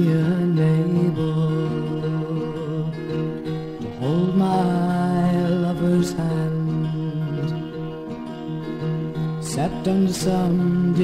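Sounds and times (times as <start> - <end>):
acoustic guitar: 0.0 - 11.0
woman singing folk song: 0.0 - 11.0.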